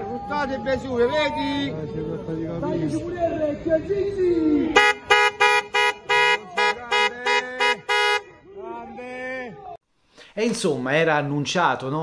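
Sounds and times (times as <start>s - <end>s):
voices shouting: 0.0s - 9.8s
horn honking: 4.8s - 8.4s
people talking: 6.0s - 9.8s.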